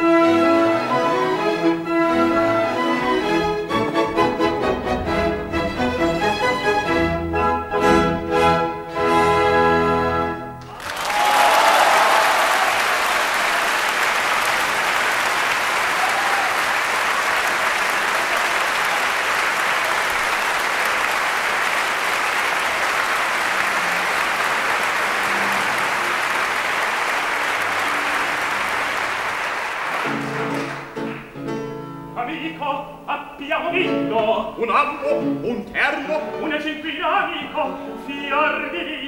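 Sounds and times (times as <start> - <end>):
audience applauding: 10.6 - 31.4.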